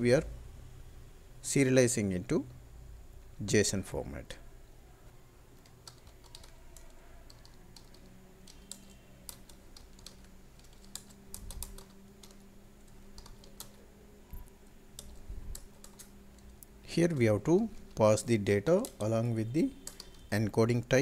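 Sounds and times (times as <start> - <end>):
low steady hum: 0.0 - 21.0.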